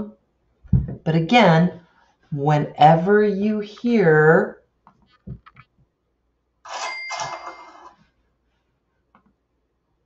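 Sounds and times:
cash register ka-ching: 0:06.7 - 0:08.0.

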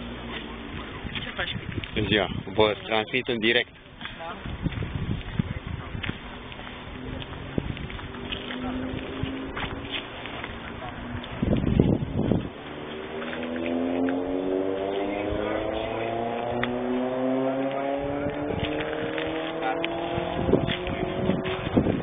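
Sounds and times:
car engine accelerating: 0:06.0 - 0:22.0.

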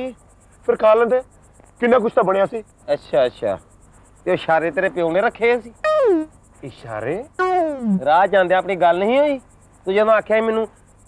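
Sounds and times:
crickets chirping: 0:00.0 - 0:11.0
men talking: 0:01.8 - 0:03.6, 0:04.3 - 0:05.7, 0:06.6 - 0:10.7.

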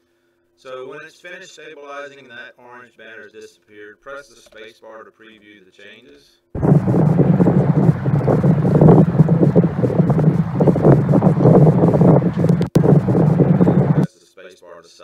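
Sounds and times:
wind buffeting microphone: 0:06.6 - 0:14.1.

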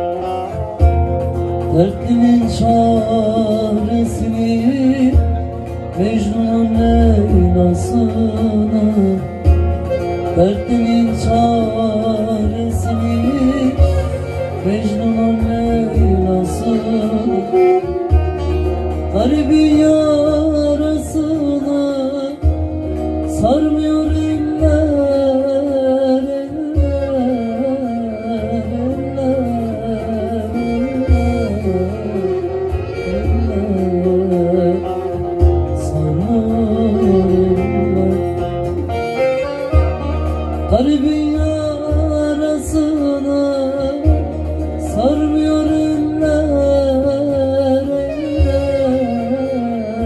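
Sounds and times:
deep bass: 0:00.0 - 0:50.0
long-necked lute playing: 0:00.0 - 0:50.0
man singing: 0:00.0 - 0:50.0.

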